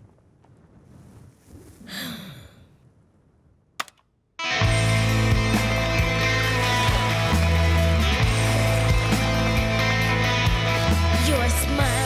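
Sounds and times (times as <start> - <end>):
person sighing: 1.8 - 2.8.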